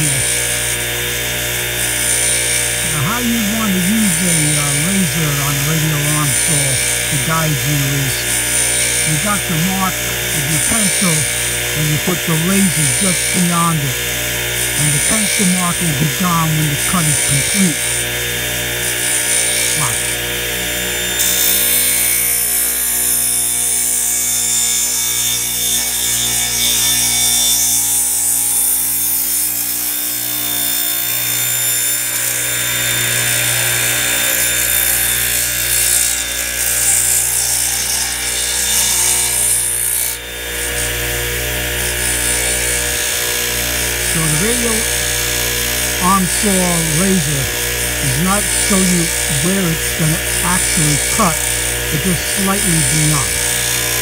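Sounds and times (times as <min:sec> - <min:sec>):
saw blade cutting wood: 0:00.0 - 0:54.0
saw motor hum: 0:00.0 - 0:54.0.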